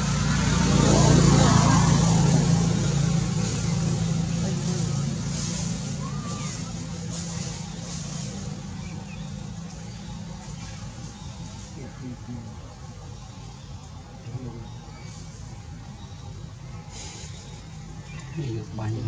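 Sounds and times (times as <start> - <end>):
motor vehicle passing: 0.0 - 19.0.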